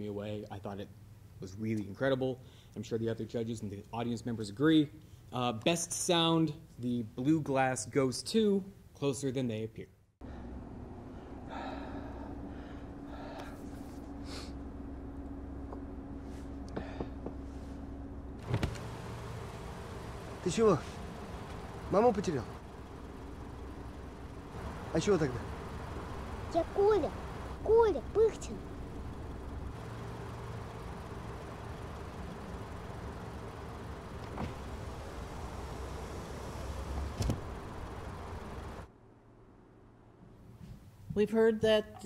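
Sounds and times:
car cabin hum: 18.2 - 38.9
window shutting thunk: 18.4 - 18.9
power window sliding up: 18.4 - 19.7, 34.1 - 37.7
electric window motor humming: 18.4 - 38.9.

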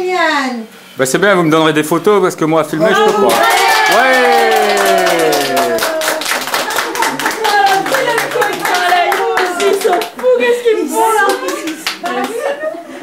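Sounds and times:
excited voices calling out: 2.8 - 12.2
hands clapping: 2.9 - 10.4, 11.2 - 12.5.

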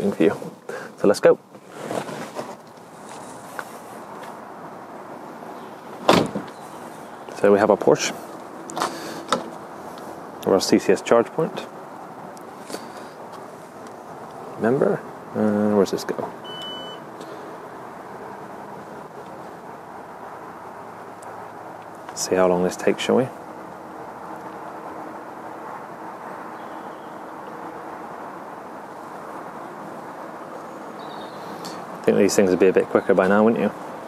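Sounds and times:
steady low hiss: 0.0 - 34.0
car door shutting: 6.0 - 6.6.

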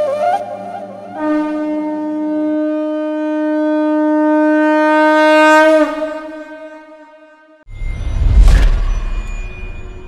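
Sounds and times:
conch shell blown in long note: 0.0 - 7.7.

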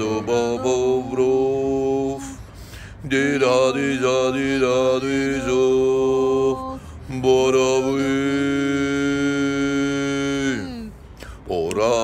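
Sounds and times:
man and woman singing: 0.0 - 12.0.

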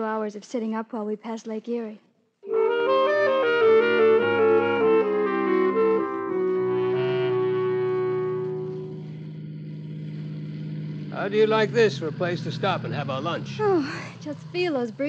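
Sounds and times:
orchestral music cue: 2.4 - 9.2.

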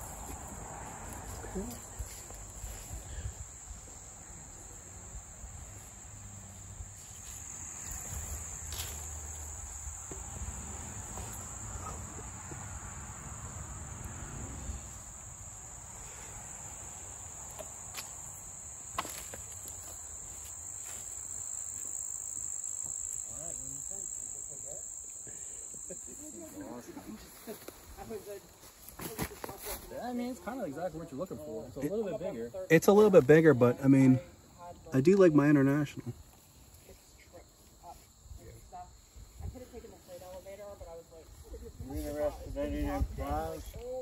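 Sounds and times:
crickets chirring: 0.0 - 44.0.

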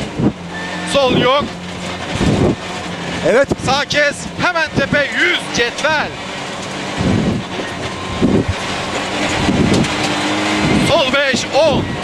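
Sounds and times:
car engine revving under load: 0.0 - 12.0
tyre and road noise on dirt: 0.0 - 12.0.

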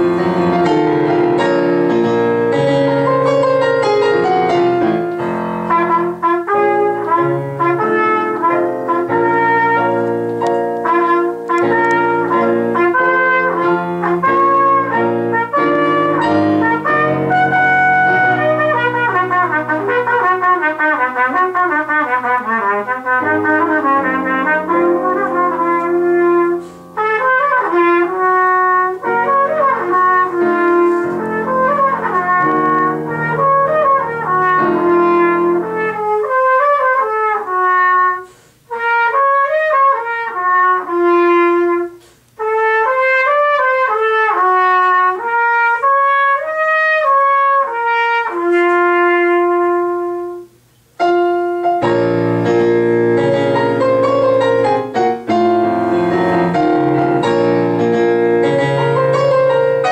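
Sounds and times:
piano accompaniment: 0.0 - 59.9
trumpet solo: 0.0 - 59.9.

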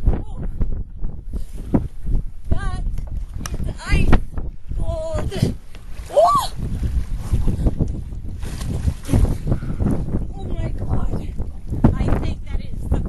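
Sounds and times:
wind rumbling on microphone: 0.0 - 13.0.

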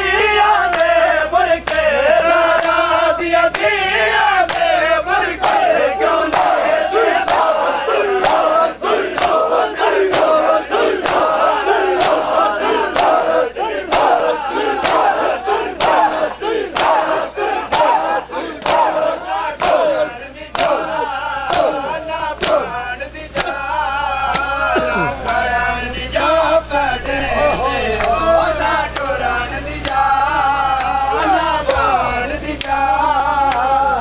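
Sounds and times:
men calling out together: 5.0 - 22.8.

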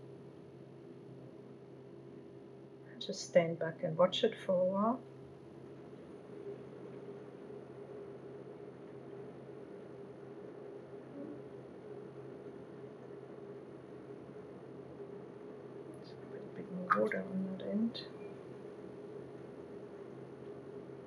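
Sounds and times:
low hum: 8.8 - 21.0.

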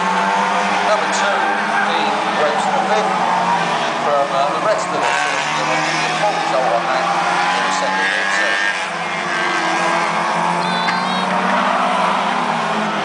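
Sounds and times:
race car engines droning: 0.0 - 13.0.

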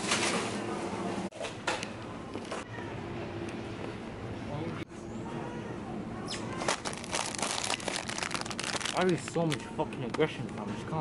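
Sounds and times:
supermarket murmur of voices: 4.5 - 11.0
plastic packets crinkling: 6.7 - 9.7.

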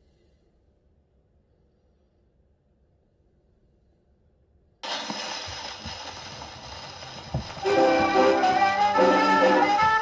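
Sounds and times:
record surface noise hiss: 0.0 - 10.0
record crackles and clicks: 4.8 - 10.0.

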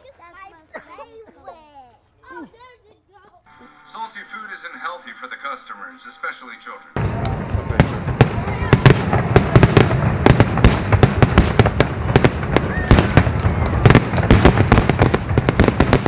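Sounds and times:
fireworks cracking and popping: 7.0 - 16.0.

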